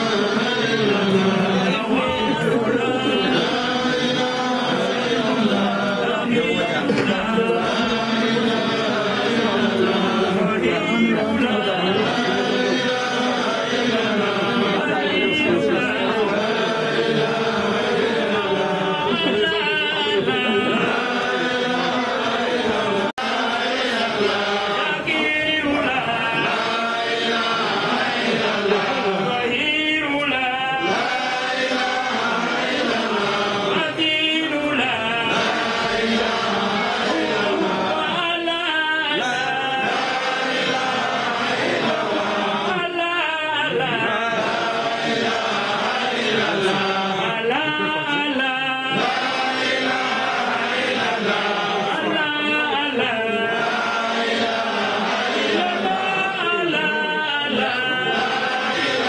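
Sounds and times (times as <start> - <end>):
men chanting together: 0.0 - 59.0.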